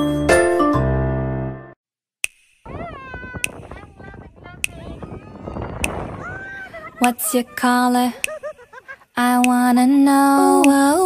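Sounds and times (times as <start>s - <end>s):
sharp clicks: 5.8s - 6.1s.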